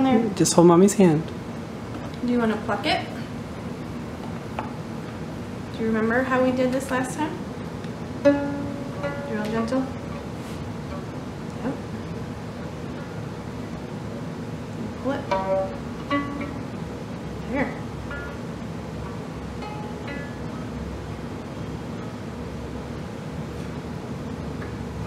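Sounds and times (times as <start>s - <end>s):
plucked violin strings: 8.2s - 9.8s, 15.2s - 16.8s.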